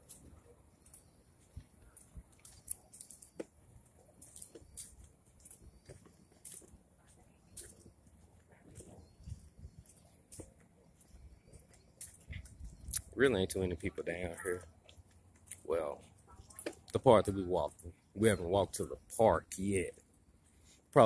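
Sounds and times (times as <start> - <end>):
stroller wheels ticking and clicking: 0.0 - 18.0.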